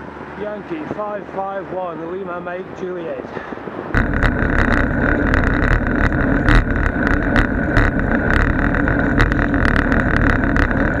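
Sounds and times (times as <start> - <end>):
wind and road noise: 0.0 - 11.0
sharp rattling clicks and knocks: 4.0 - 11.0.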